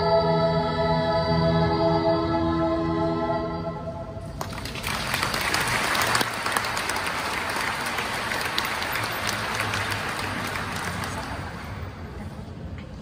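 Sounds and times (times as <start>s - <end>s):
audience applause: 4.4s - 12.0s.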